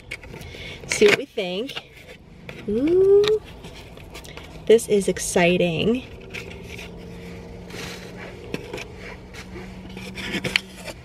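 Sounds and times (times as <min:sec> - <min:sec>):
steady low hum: 0:00.0 - 0:11.0
cardboard box scraping and rustling: 0:05.7 - 0:11.0.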